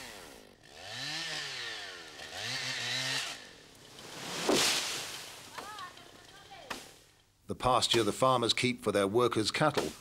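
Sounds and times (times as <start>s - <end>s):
chainsaw revving: 0.0s - 5.5s.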